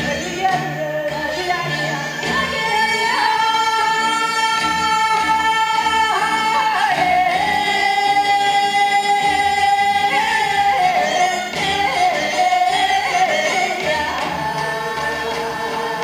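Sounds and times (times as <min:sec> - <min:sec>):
singer holding long notes: 0:00.0 - 0:16.0.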